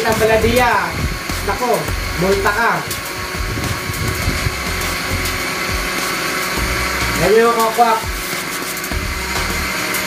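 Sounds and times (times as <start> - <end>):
blender motor running: 0.0 - 10.0.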